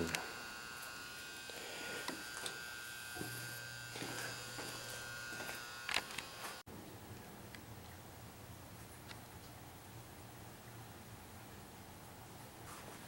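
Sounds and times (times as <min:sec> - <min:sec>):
steady electrical buzz: 0:00.0 - 0:06.7.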